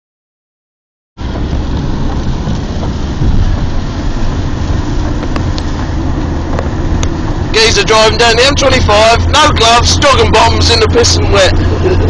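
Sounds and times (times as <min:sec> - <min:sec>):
engine and road rumble in car: 0:01.2 - 0:12.0
tyres hissing on wet road: 0:01.2 - 0:12.0.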